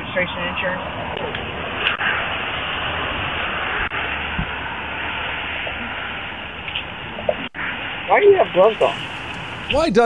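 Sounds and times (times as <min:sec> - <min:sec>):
road and traffic noise: 0:00.0 - 0:10.0.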